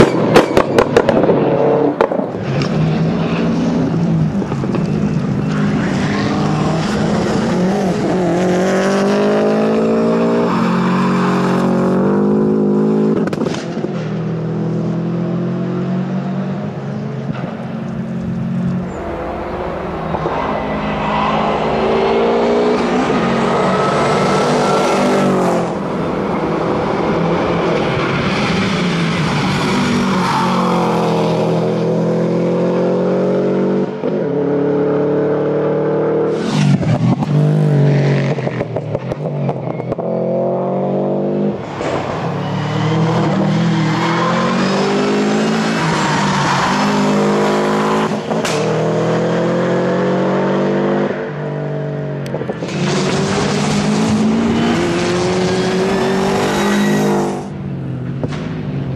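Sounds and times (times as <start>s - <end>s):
car engine revving high: 18.4s - 38.8s, 52.2s - 57.6s.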